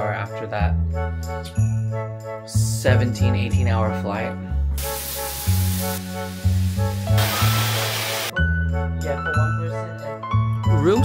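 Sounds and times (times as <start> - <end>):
shower head spraying water: 4.8 - 8.3.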